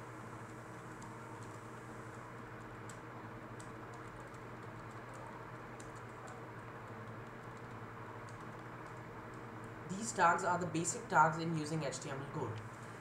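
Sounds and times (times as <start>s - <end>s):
steady low hum: 0.0s - 13.0s
typing on computer keyboard: 3.6s - 9.4s.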